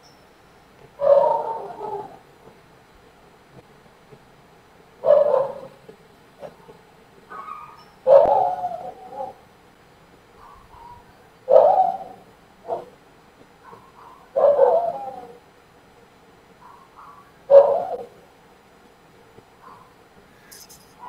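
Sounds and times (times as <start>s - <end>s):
animal calling: 1.0s - 2.2s, 7.3s - 9.4s, 10.4s - 12.9s, 13.7s - 15.4s, 16.6s - 18.2s.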